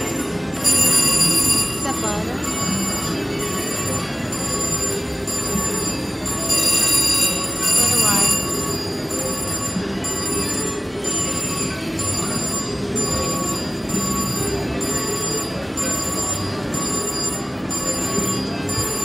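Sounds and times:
murmur of crowd chatter: 0:00.0 - 0:19.0
slot machine chimes and beeps: 0:00.0 - 0:19.0.

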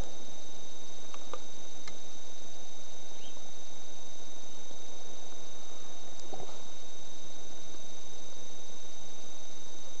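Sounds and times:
high-pitched whine: 0:00.0 - 0:10.0.

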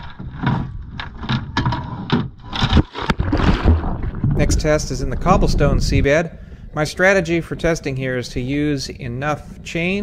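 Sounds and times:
knocks and bumps: 0:00.0 - 0:06.3
water noise: 0:02.4 - 0:10.0
wind noise: 0:03.2 - 0:10.0
low rumble: 0:03.4 - 0:10.0.

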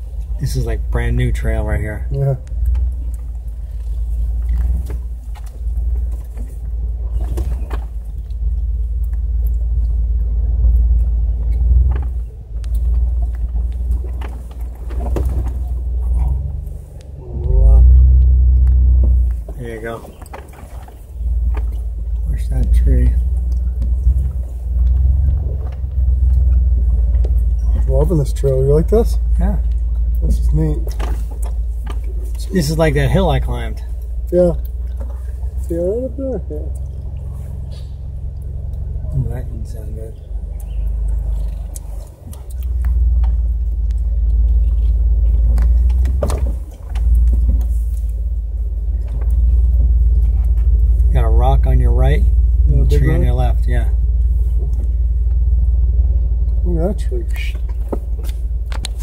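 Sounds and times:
knocks and rattles of vehicle body: 0:00.0 - 0:36.1, 0:36.7 - 0:59.0
car engine low rumble: 0:00.0 - 0:59.0.

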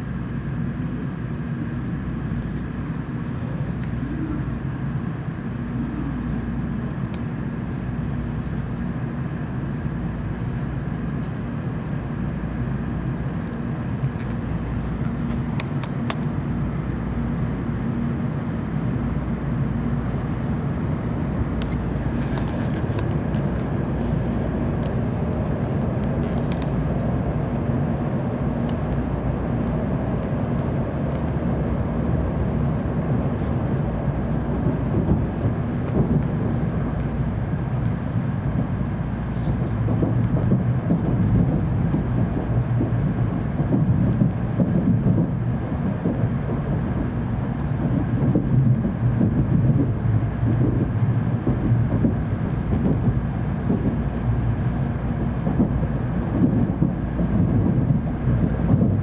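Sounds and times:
train interior rumble: 0:00.0 - 0:59.0.

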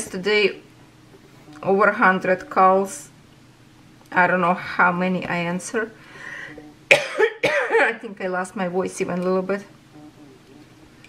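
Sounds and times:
woman coughing: 0:06.9 - 0:08.1.

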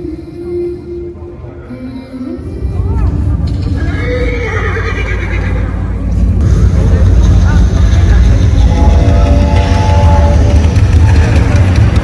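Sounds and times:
deep steady rumble: 0:02.4 - 0:12.0.

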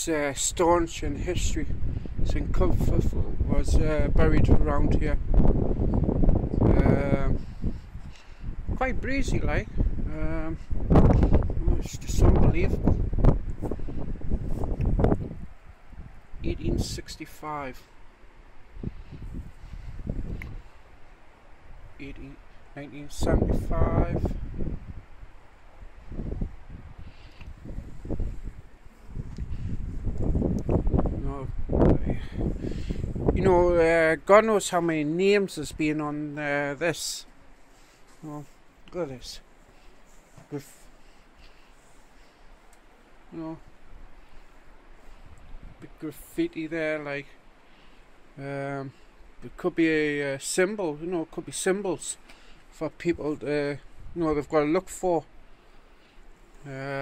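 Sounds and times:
wind buffeting microphone: 0:00.0 - 0:17.3, 0:18.4 - 0:36.1.

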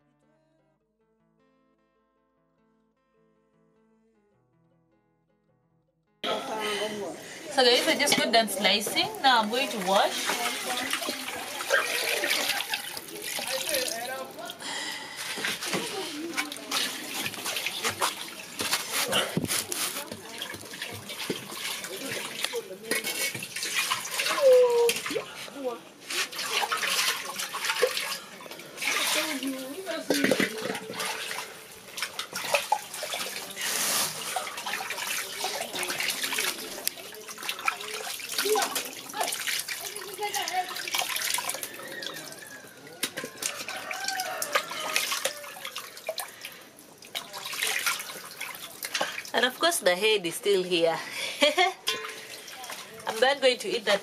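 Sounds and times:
water sloshing in metal pot: 0:07.2 - 0:50.8, 0:51.4 - 0:54.0.

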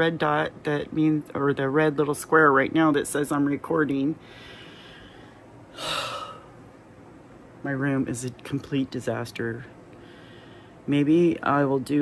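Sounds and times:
breathy sigh: 0:04.2 - 0:06.6
woman breathing: 0:04.2 - 0:06.6, 0:09.9 - 0:10.9.

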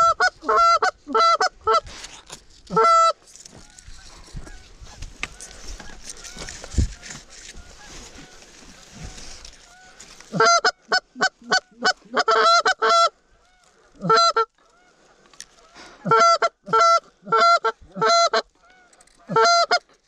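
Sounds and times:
goose honking: 0:02.7 - 0:15.0, 0:15.6 - 0:19.9.

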